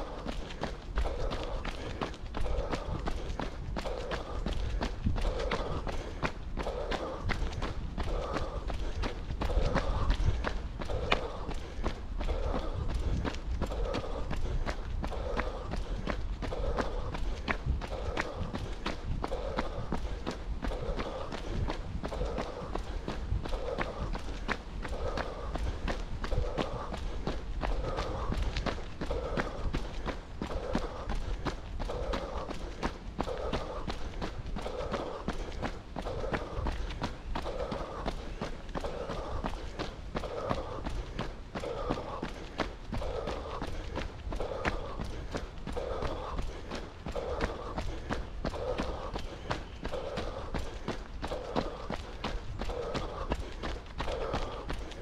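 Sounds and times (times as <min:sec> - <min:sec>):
footsteps on dirt path: 0:00.0 - 0:55.0
heavy rhythmic breathing: 0:00.0 - 0:55.0.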